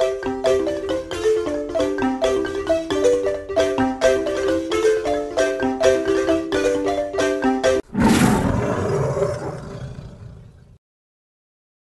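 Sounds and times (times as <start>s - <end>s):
sudden roar-like burst: 7.9s - 10.8s.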